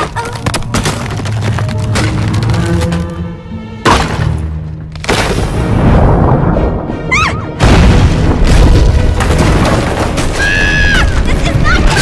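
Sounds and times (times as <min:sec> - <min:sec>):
dramatic music: 0:00.0 - 0:12.0.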